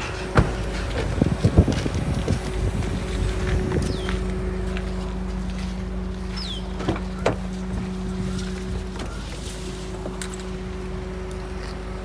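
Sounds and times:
engine idling hum: 0:00.0 - 0:12.0.

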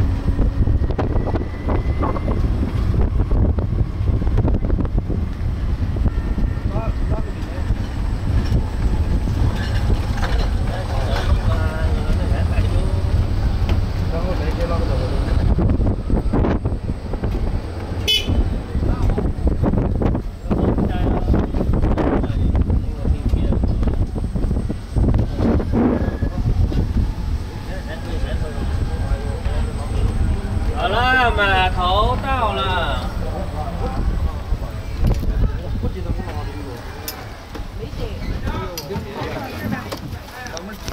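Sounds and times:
cart rumbling: 0:00.0 - 0:40.9
faint voices talking: 0:00.0 - 0:40.9
wind buffeting microphone: 0:00.0 - 0:40.9.

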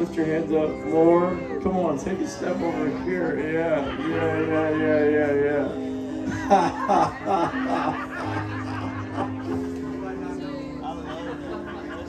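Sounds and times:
worship music with held notes: 0:00.0 - 0:12.0
person laughing: 0:03.6 - 0:09.7.

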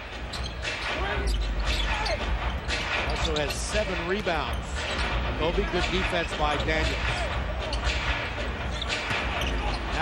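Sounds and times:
arena crowd noise: 0:00.8 - 0:10.0.

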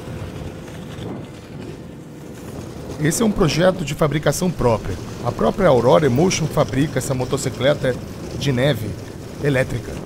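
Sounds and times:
skis sliding over snow: 0:00.0 - 0:10.0.

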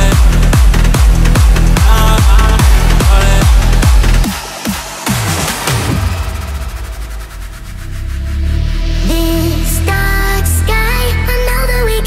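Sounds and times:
low bass drone: 0:00.0 - 0:12.0.

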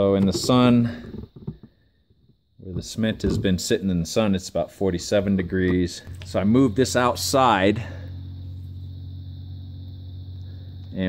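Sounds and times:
low machine hum: 0:01.7 - 0:11.0
faint high whine: 0:01.8 - 0:11.0.

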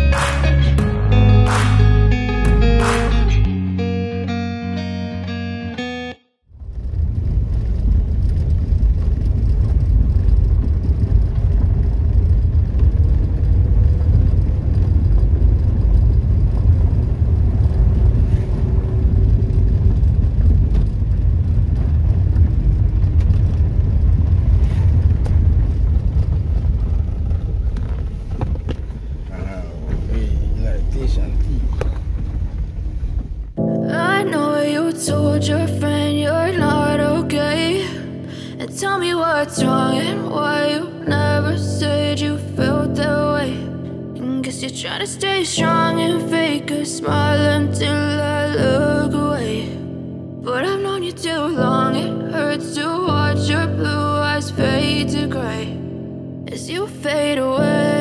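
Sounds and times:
pop background music: 0:00.0 - 0:04.0, 0:33.6 - 0:58.0
car driving on dirt road: 0:06.5 - 0:55.8.

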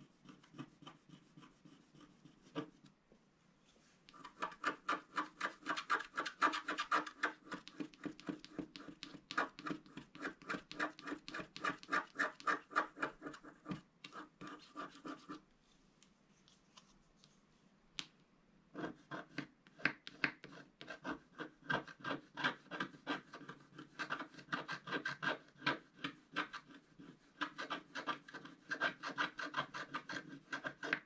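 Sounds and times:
stylus scratching a coated sheet: 0:00.0 - 0:02.9, 0:03.7 - 0:15.4, 0:18.8 - 0:31.0.

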